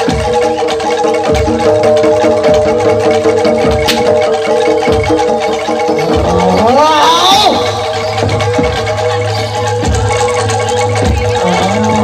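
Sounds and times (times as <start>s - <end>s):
gamelan metal mallet instruments: 0.0s - 12.0s
sharp crack: 3.8s - 4.1s.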